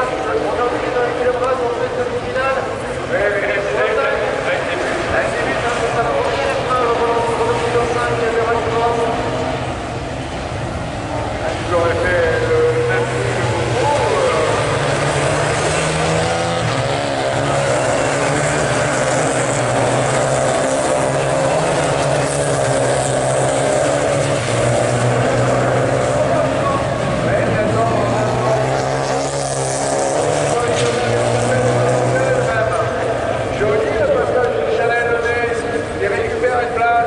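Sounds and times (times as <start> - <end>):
race car engines at high revs: 0.0 - 37.0.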